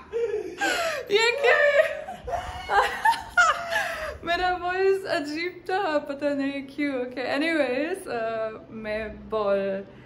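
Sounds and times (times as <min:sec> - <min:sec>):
woman laughing: 0:00.0 - 0:04.3.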